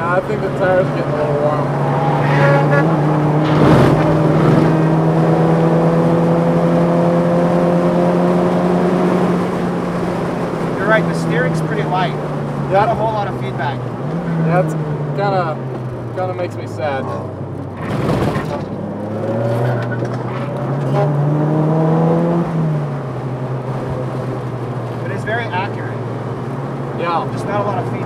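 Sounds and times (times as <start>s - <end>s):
car engine under hard driving: 0.0s - 28.0s.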